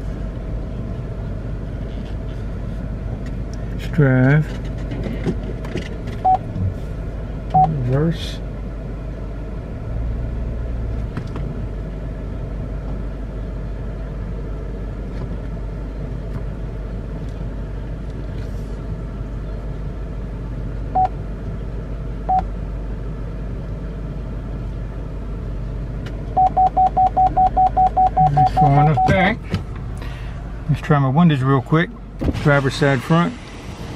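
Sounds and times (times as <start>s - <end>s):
car cabin engine rumble: 0.0s - 33.9s
parking warning beeps: 6.2s - 6.5s, 7.5s - 7.8s, 20.9s - 21.2s, 22.2s - 22.5s, 26.3s - 29.4s.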